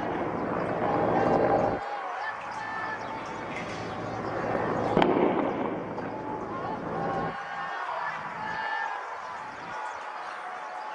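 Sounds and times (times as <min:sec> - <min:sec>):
background street noise: 0:00.0 - 0:10.9
shotgun shot with echo: 0:05.0 - 0:05.9.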